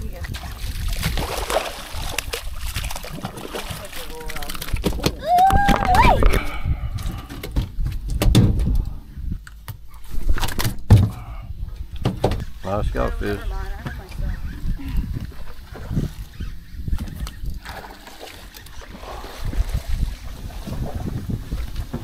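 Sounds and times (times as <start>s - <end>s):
fish flopping on boat deck: 0.0s - 8.9s
fish splashing at surface: 0.4s - 5.1s.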